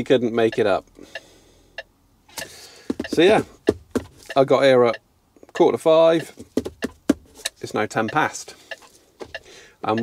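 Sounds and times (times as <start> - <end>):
faint evenly spaced ticking: 0.4 - 10.0.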